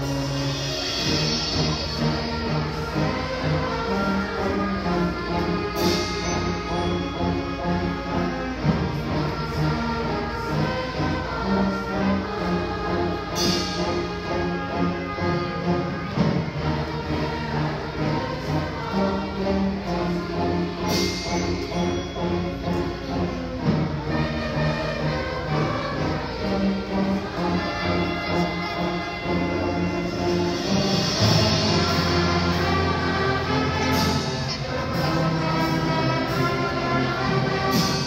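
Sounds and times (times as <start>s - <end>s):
choir singing: 0.0s - 38.0s
orchestra playing: 0.0s - 38.0s.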